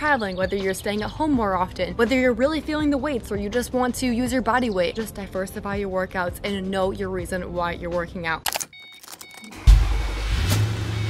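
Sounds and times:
car key clicking in ignition: 0:08.5 - 0:09.6
keyring jingling: 0:08.5 - 0:09.6
car engine starting and rumbling: 0:09.0 - 0:11.0.

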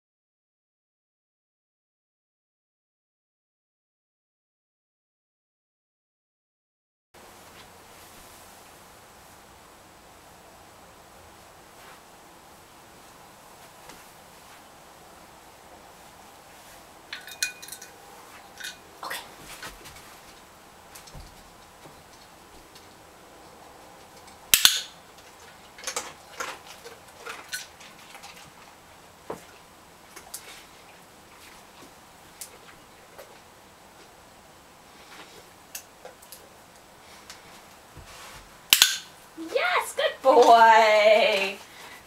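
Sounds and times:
fabric mat unrolling on carpet: 0:38.0 - 0:38.5
woman praising dog: 0:39.4 - 0:41.6.

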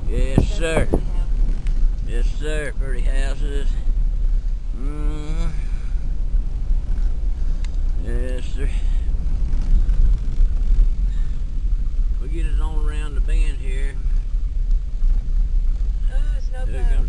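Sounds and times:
car engine and tyres rumbling: 0:00.0 - 0:17.0.

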